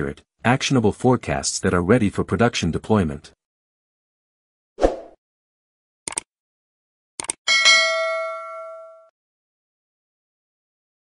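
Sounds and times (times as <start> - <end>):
bell ding: 7.5 - 9.1.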